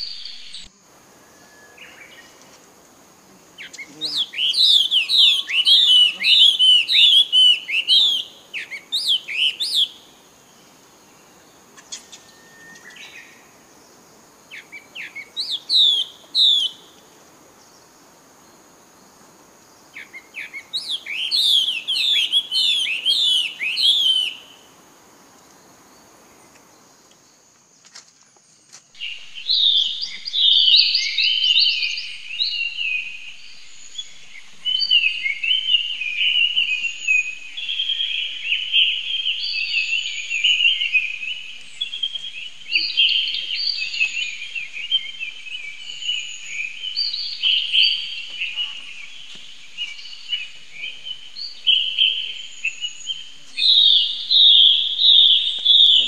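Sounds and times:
high insect drone: 0:00.0 - 0:56.0
birds chirping and singing: 0:03.4 - 0:10.1, 0:14.5 - 0:17.1, 0:19.8 - 0:24.6, 0:29.0 - 0:56.0.

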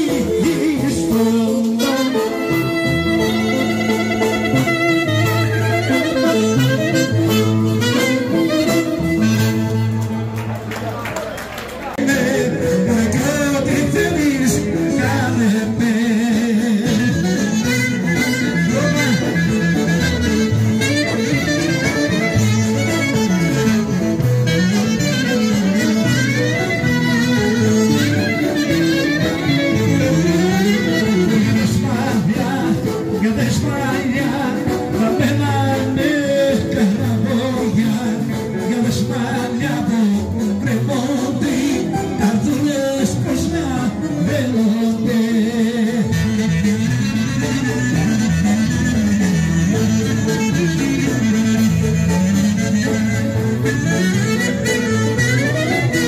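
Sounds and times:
clarinet melody: 0:00.0 - 0:10.4, 0:12.2 - 0:56.0
drums: 0:00.0 - 0:10.6, 0:12.0 - 0:56.0
electric guitar: 0:00.0 - 0:56.0
folk dance music: 0:00.0 - 0:56.0.

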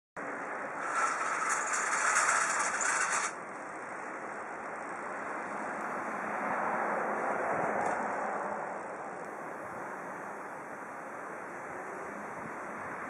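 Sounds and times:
town background hiss: 0:00.2 - 0:13.0.

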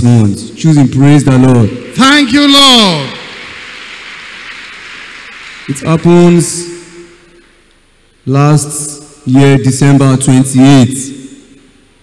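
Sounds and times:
crowded hall background hiss: 0:00.0 - 0:12.0.

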